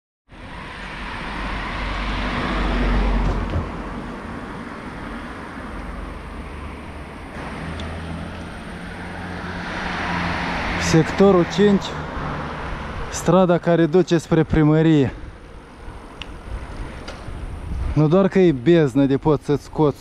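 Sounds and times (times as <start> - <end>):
car passing: 0.3 - 18.6.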